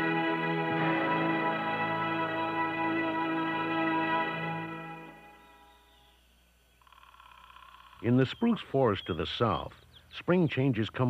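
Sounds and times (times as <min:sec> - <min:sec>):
music: 0:00.0 - 0:06.0.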